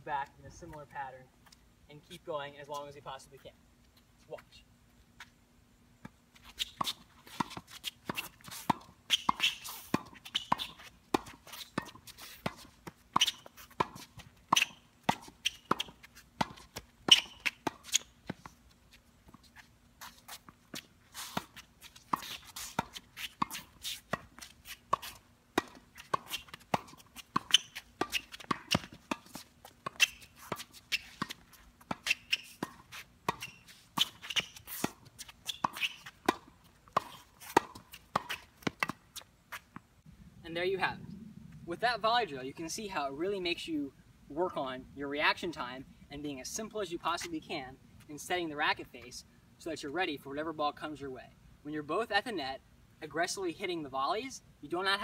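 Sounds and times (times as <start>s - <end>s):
tennis racket hitting balls: 6.0s - 18.6s, 19.2s - 39.8s.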